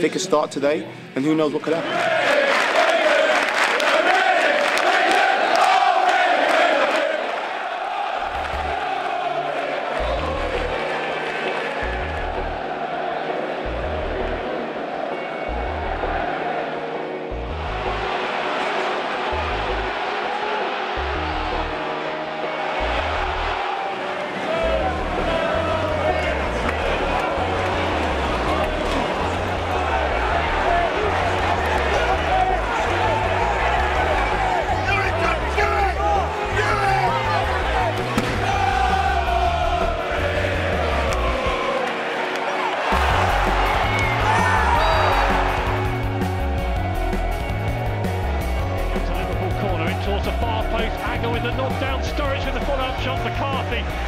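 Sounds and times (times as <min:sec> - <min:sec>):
football crowd singing: 0:01.7 - 0:46.2
music with pulsing bass beat: 0:43.0 - 0:54.0.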